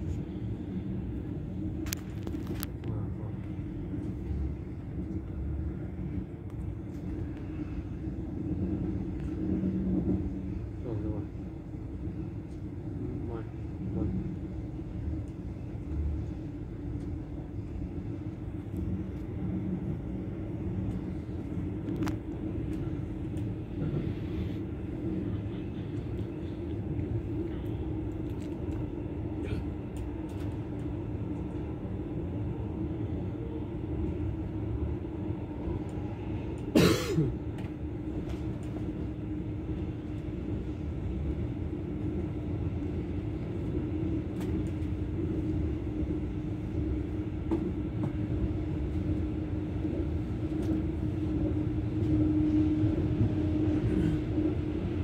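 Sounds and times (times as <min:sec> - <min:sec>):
constant hum: 0:00.0 - 0:55.0
train rumbling at speed: 0:00.0 - 0:55.0.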